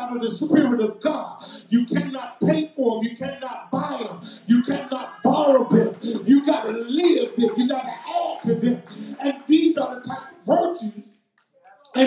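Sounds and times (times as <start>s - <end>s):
man preaching into microphone: 0.0s - 11.1s.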